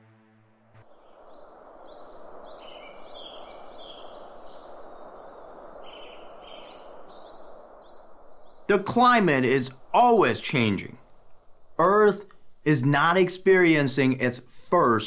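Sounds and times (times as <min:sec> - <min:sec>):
outdoor background hiss: 0:00.8 - 0:15.0
small birds chirping: 0:00.9 - 0:12.6.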